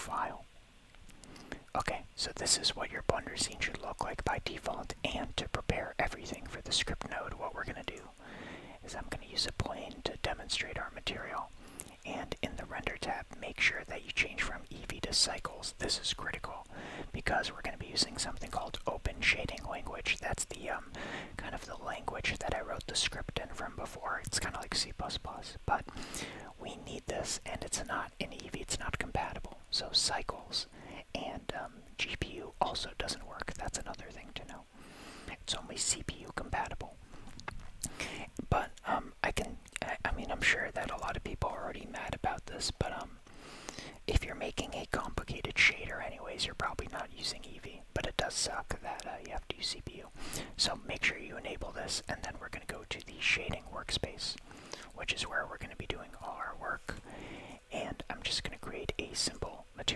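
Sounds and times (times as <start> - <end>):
man whispering: 0.0 - 0.6, 1.2 - 59.9
small mouth clicks: 0.9 - 1.7, 37.2 - 38.9.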